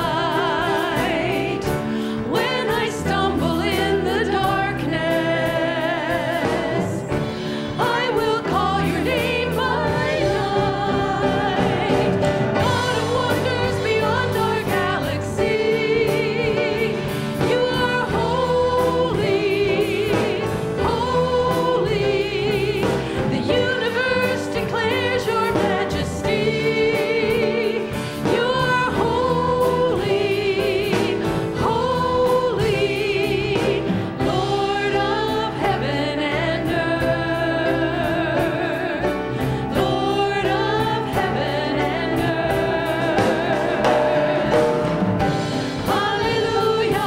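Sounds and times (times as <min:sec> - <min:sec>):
women singing together: 0:00.0 - 0:47.0
band with drums guitar keyboard: 0:41.9 - 0:47.0.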